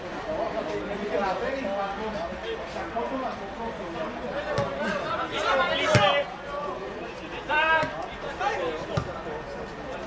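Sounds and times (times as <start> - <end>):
football being kicked: 4.5 - 4.8, 5.8 - 6.2, 8.9 - 9.2.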